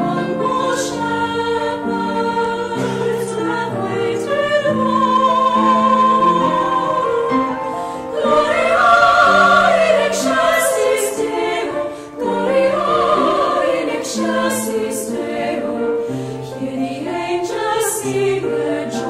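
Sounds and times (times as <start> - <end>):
women's choir singing carol: 0.0 - 19.0.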